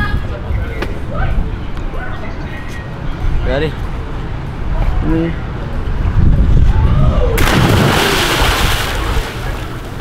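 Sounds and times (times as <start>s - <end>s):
person splashing into pool: 7.4s - 9.6s.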